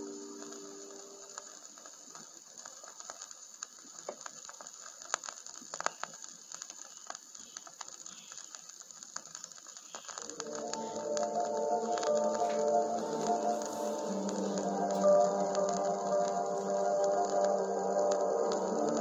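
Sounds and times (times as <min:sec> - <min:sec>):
vinyl surface hiss and crackles: 0:00.0 - 0:19.0
song music: 0:10.2 - 0:19.0.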